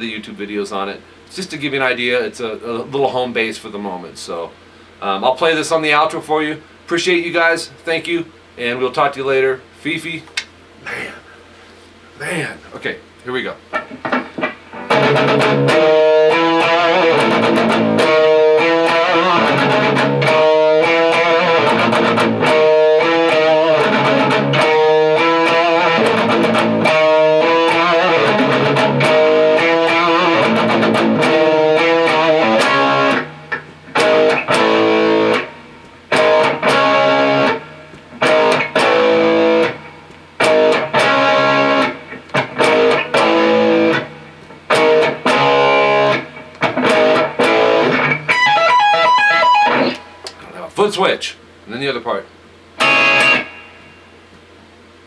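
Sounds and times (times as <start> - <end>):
electric guitar chords and riffs: 13.7 - 50.4, 52.6 - 54.4.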